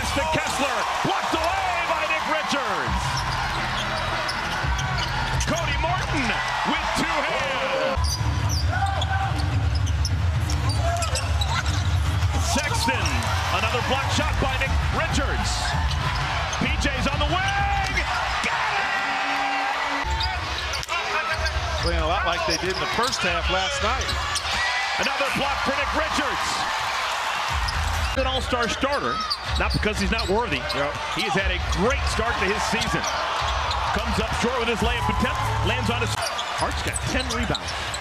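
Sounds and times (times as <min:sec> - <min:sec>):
crowd noise: 0:00.0 - 0:38.0.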